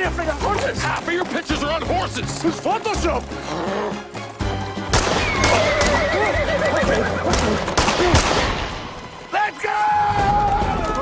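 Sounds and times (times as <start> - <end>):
horse whinnying: 3.3 - 4.3, 5.1 - 7.8
sharp crack: 4.9 - 6.0, 7.3 - 9.1.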